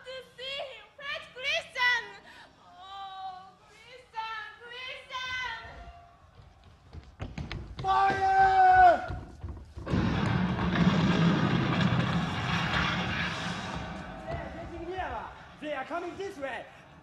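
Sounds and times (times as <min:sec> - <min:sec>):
cannon blast rumble: 0:09.9 - 0:15.5.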